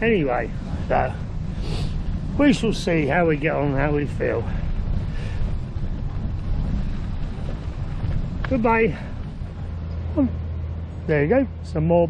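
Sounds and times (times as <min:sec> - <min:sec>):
bicycle tyres on gravel: 0:00.0 - 0:10.0
wind buffeting microphone: 0:00.0 - 0:12.0.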